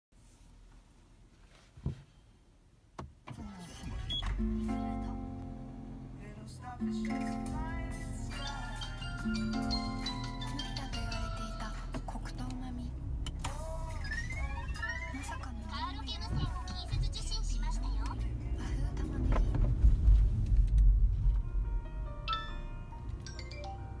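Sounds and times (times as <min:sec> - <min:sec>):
car engine rumbling: 0:00.2 - 0:24.0
voice from car speakers: 0:14.9 - 0:19.6.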